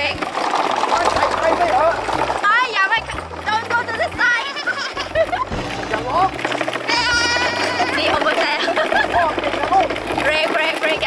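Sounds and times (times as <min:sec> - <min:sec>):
cart wheels rolling on gravel: 0:00.0 - 0:11.0
voices calling out: 0:00.8 - 0:11.0.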